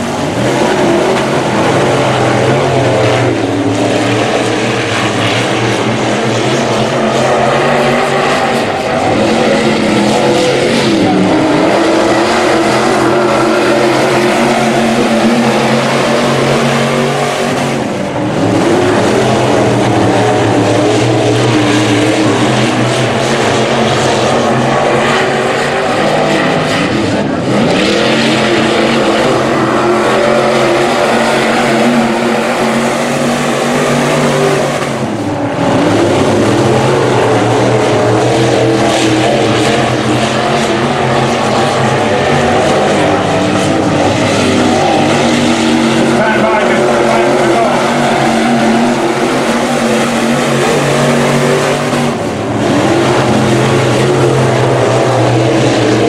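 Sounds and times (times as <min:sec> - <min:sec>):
race car engines racing: 0:00.0 - 0:56.0.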